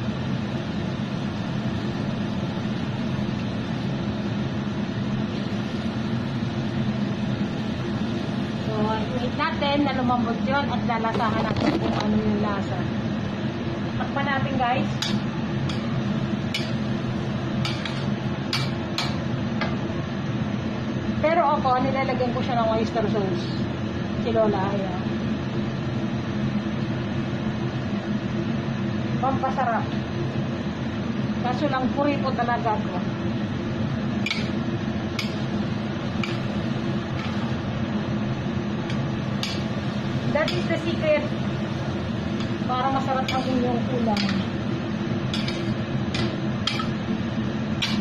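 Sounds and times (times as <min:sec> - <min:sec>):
steady background hum: 0:00.0 - 0:48.0.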